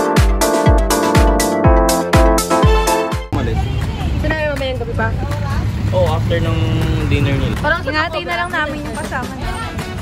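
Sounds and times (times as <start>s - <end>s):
people talking: 3.4s - 10.0s.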